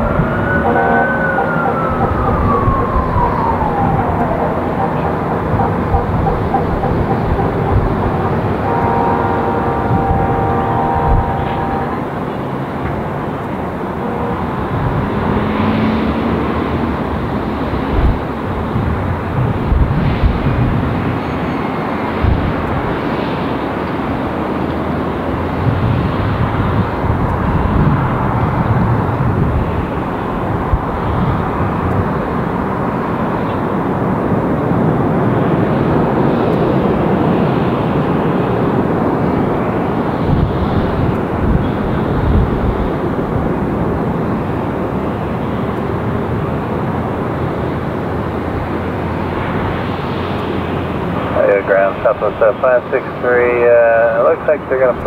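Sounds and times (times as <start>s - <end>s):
jet engines on runway: 0.0s - 55.0s.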